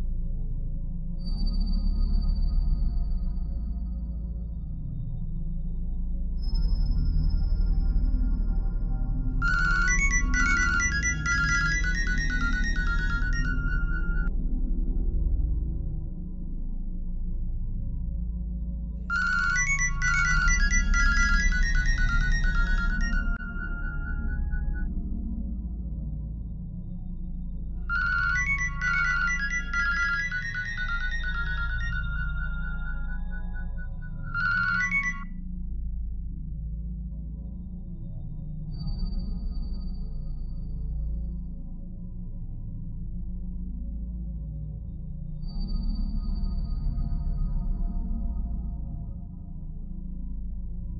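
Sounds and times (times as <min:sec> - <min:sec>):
mobile phone ringtone: 0:09.4 - 0:14.3, 0:19.1 - 0:24.1, 0:27.9 - 0:35.3.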